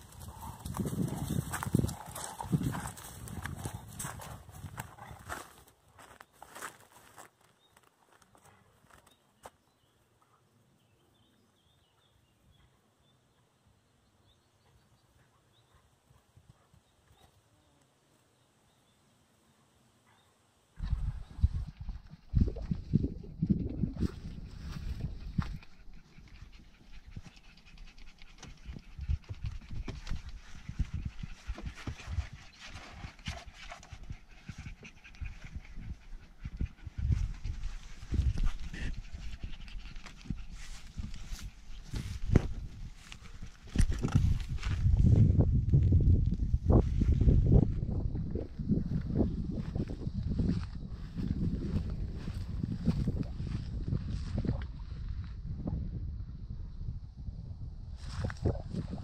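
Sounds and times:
low rumble on microphone: 20.8s - 59.0s
puppies panting: 21.2s - 42.3s.

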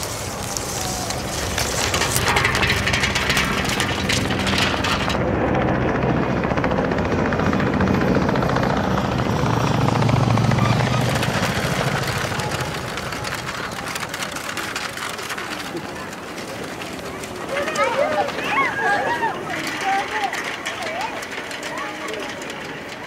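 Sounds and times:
film scraping wire mesh: 0.0s - 5.2s
helicopter rotor chop: 0.0s - 23.0s.

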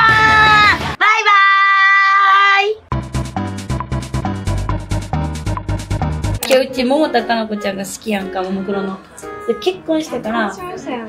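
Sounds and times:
upbeat electronic music: 2.9s - 8.7s.

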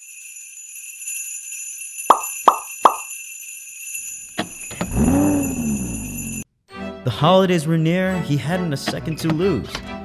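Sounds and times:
sleigh bells jingling: 0.0s - 6.4s
cartoon pop sound effects: 2.1s - 3.0s.

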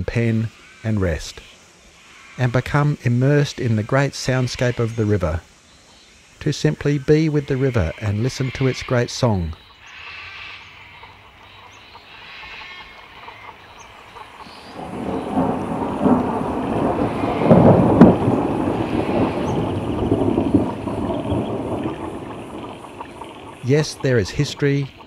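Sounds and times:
thunder rumbling: 14.2s - 25.0s
sharp thunder crack: 14.6s - 25.0s.

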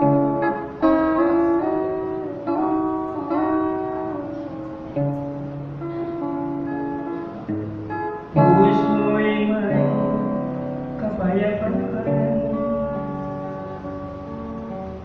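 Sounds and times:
strummed acoustic guitar: 0.0s - 15.0s
man singing gospel song: 8.4s - 12.8s.

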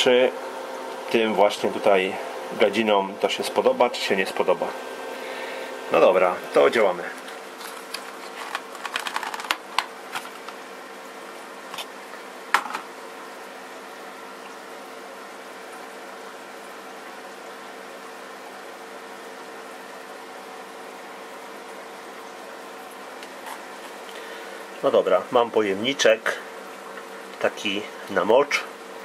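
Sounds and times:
steady mechanical hum: 0.0s - 29.0s
cardboard box rustling: 7.2s - 10.6s.

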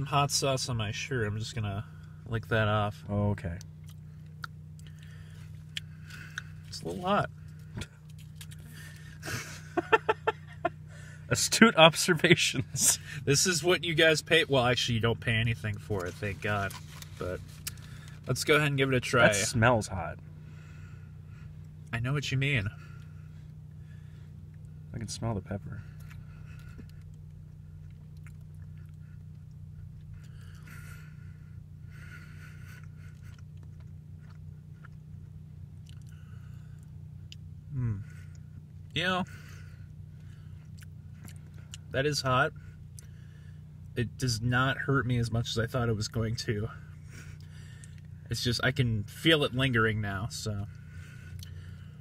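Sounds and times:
low car cabin hum: 0.0s - 52.0s
man chewing food: 3.6s - 6.8s, 7.4s - 9.2s, 25.9s - 41.9s, 42.5s - 44.0s, 47.0s - 48.2s, 50.7s - 52.0s
man laughing: 9.2s - 11.2s, 11.9s - 13.3s, 37.8s - 38.1s.

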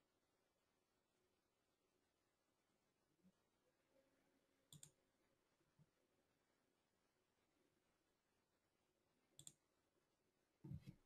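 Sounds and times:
computer mouse clicks: 4.7s - 5.0s, 9.4s - 9.6s.

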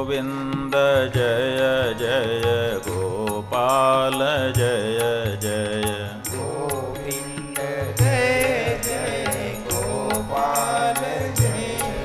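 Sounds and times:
person singing devotional song: 0.0s - 12.0s
drum beats: 6.3s - 12.0s.

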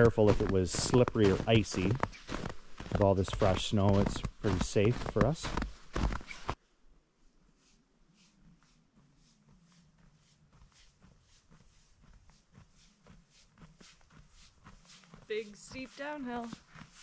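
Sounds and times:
footsteps in snow: 0.0s - 6.6s, 7.2s - 17.0s.

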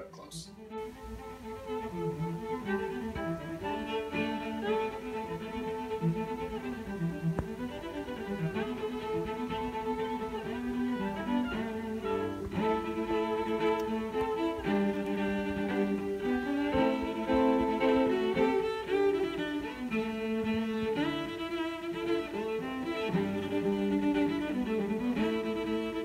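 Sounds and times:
cello and violin playing held notes: 0.5s - 26.0s.

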